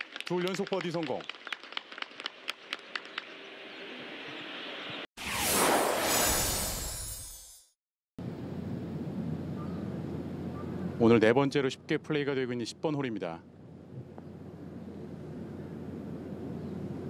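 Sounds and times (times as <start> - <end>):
transition whoosh: 5.2 - 7.7.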